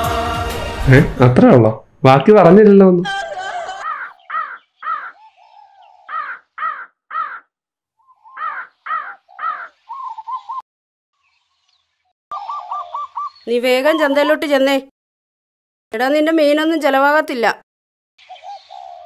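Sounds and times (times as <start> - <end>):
crows cawing: 3.1 - 7.6, 8.2 - 10.4.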